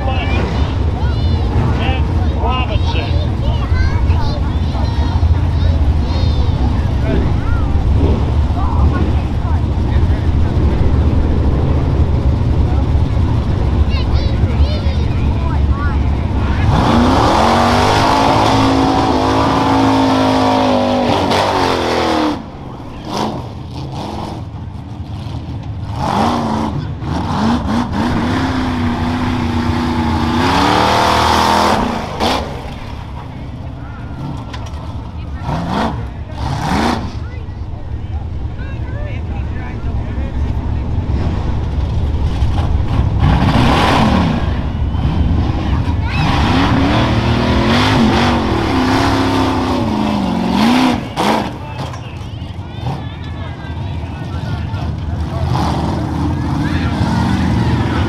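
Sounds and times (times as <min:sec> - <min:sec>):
truck engine revving: 0:00.0 - 0:58.0.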